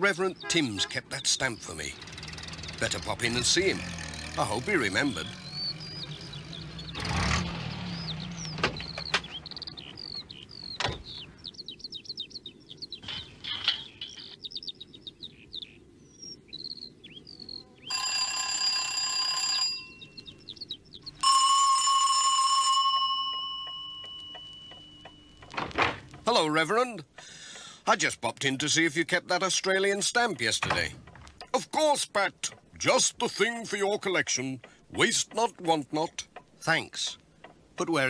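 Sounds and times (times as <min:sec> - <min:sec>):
birds chirping: 0:00.0 - 0:21.5, 0:23.6 - 0:38.0
doorbell ringing: 0:17.9 - 0:20.2, 0:21.2 - 0:25.5.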